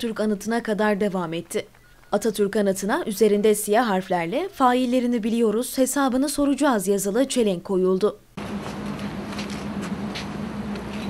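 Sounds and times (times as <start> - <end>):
constant low hum: 8.4 - 11.0.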